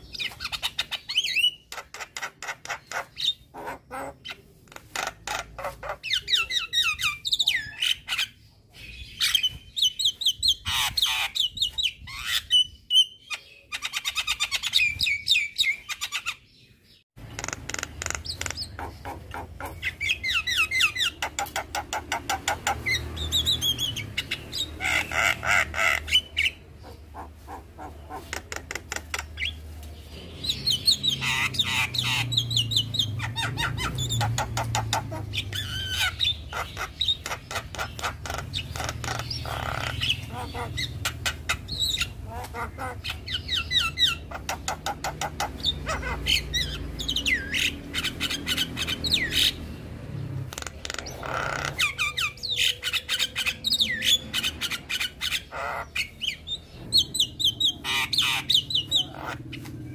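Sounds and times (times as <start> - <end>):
myna bird chattering and whistling: 0.0 - 59.9.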